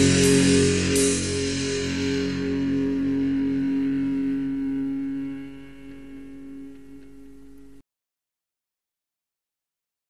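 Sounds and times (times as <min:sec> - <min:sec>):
guitar chord ringing out: 0:00.0 - 0:07.8.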